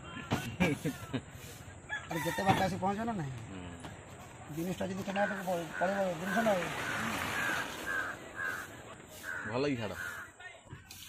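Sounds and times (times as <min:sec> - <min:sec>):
crow calling: 0:04.6 - 0:10.4.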